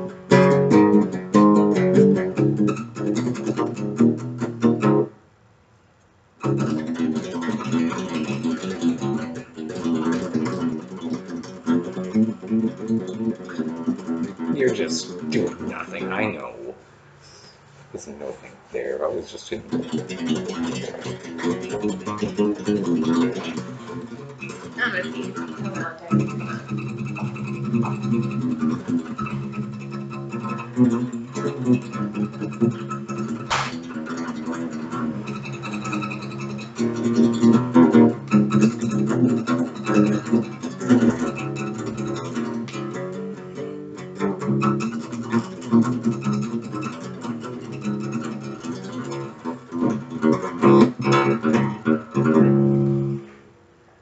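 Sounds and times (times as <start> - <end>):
acoustic guitar played with pick: 0.0 - 5.4, 6.4 - 16.6, 19.0 - 53.6.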